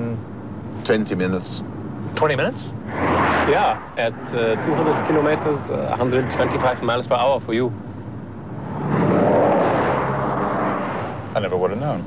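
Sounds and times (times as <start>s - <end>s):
steady low hum: 1.4s - 12.0s
car passing at speed: 2.8s - 11.8s.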